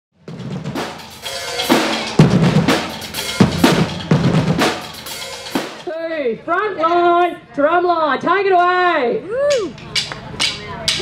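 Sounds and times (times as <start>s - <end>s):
heavy bass drum accents: 0.2s - 5.9s
snare drums: 0.2s - 5.9s.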